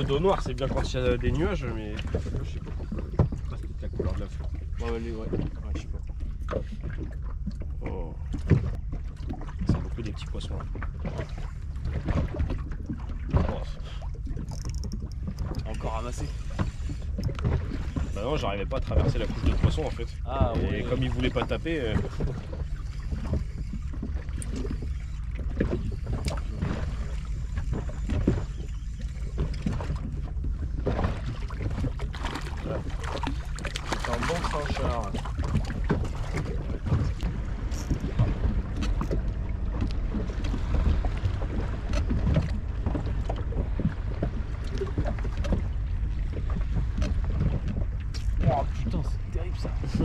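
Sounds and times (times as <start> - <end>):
water lapping against boat hull: 0.0 - 50.0
wind rumble on microphone: 0.0 - 50.0
fishing tackle knocks and clicks: 14.3 - 15.8.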